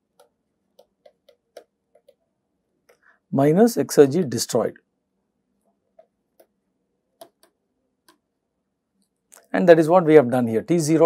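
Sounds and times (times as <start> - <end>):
stylus tapping on screen: 0.0 - 3.1, 5.7 - 6.6, 7.2 - 8.3.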